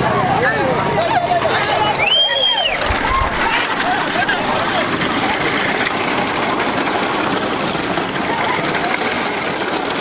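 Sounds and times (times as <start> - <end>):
crowd noise: 0.0 - 10.0
vehicle engines running: 0.0 - 10.0.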